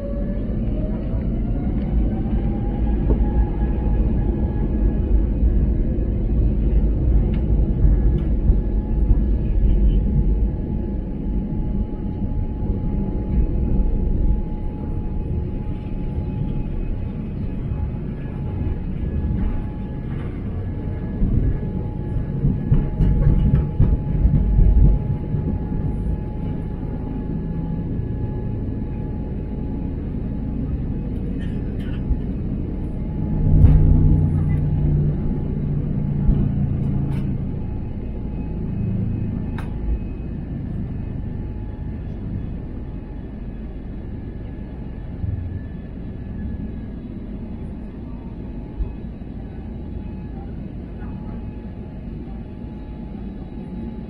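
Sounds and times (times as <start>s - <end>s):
jet engine whine: 0.0s - 54.0s
wheels rumbling on runway: 0.0s - 54.0s.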